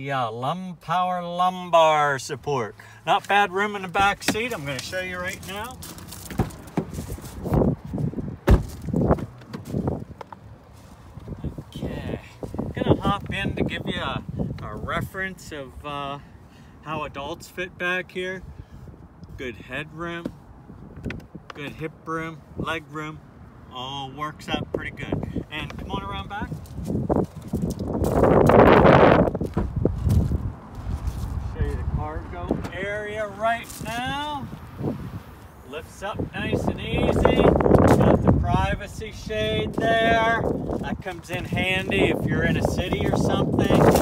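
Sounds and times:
footsteps: 0:04.2 - 0:11.4, 0:26.5 - 0:31.8
car doors being handled: 0:06.1 - 0:07.2, 0:08.4 - 0:09.9.

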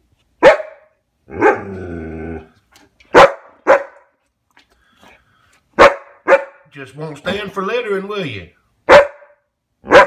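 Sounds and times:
dog barking: 0:00.4 - 0:01.6, 0:03.1 - 0:04.1, 0:05.8 - 0:06.7, 0:08.8 - 0:10.0.

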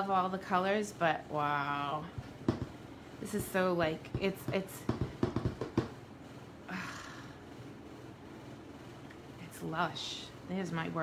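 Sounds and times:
stamp block tapping ink pad: 0:04.1 - 0:06.0.

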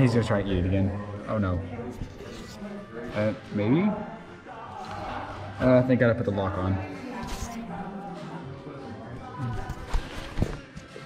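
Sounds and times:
children's tv music: 0:00.0 - 0:11.0.

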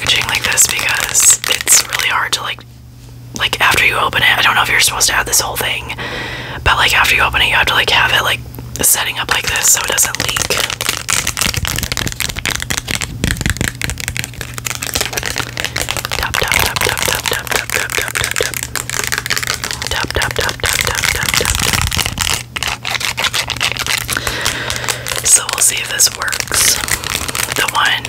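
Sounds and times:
fingernails crinkling plastic packet: 0:00.0 - 0:02.6, 0:08.8 - 0:28.0.

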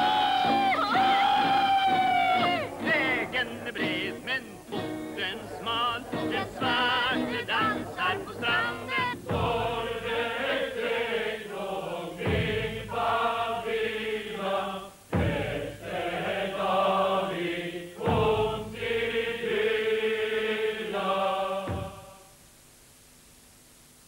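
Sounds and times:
deep drum strokes: 0:00.0 - 0:10.9, 0:11.9 - 0:14.0, 0:15.0 - 0:19.8, 0:21.6 - 0:22.3
choir singing solemn chant: 0:02.2 - 0:22.3.

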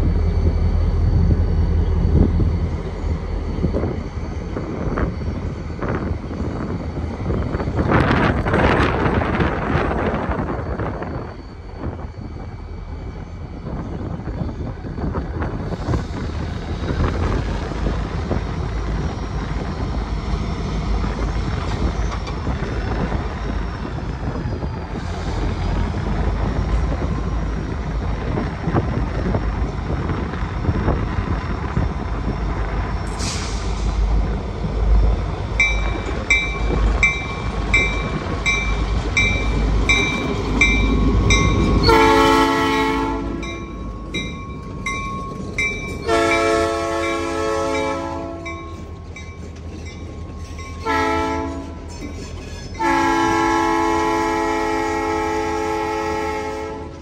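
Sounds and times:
diesel locomotives rumbling: 0:00.0 - 0:57.0
locomotive air horn blasts: 0:41.8 - 0:43.5, 0:46.1 - 0:48.6, 0:50.8 - 0:51.8, 0:52.8 - 0:57.0.

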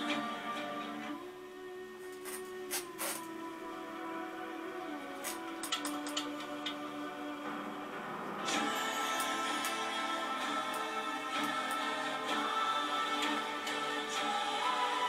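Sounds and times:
bamboo flute long notes: 0:00.0 - 0:07.5
instrumental accompaniment: 0:00.0 - 0:15.0.

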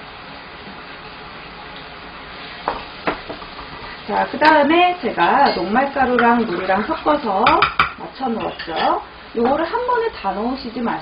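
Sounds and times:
vegetables sizzling in frying pan: 0:00.0 - 0:11.0
wooden spatula knocking pan: 0:07.4 - 0:08.0.

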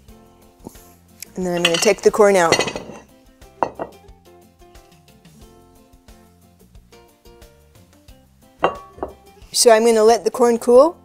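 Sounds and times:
quiet background music: 0:00.0 - 0:11.0
metal tongs clinking: 0:01.2 - 0:03.0.

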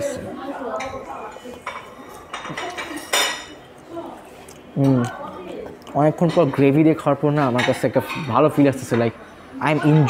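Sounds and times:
dishes and cutlery clinking: 0:00.6 - 0:03.8, 0:05.7 - 0:10.0.

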